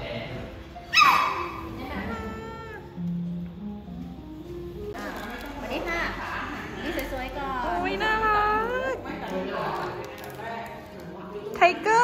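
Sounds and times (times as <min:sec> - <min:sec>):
small dog yipping: 0:00.9 - 0:02.8.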